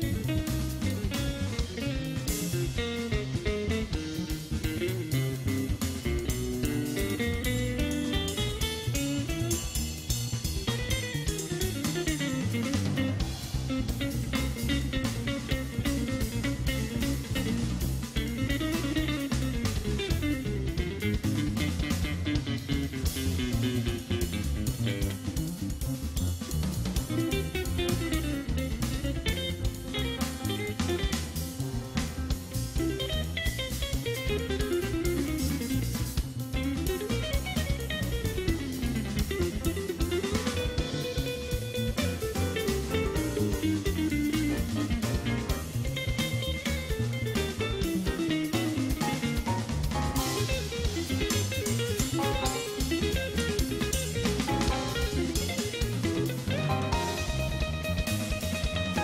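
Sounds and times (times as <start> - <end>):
electric guitar solo: 0.0 - 25.6, 27.0 - 59.0
bass: 0.0 - 59.0
drum kit: 0.0 - 59.0.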